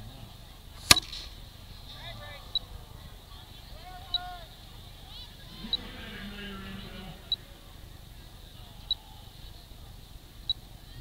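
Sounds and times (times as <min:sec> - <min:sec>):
muffled voices: 0:00.0 - 0:11.0.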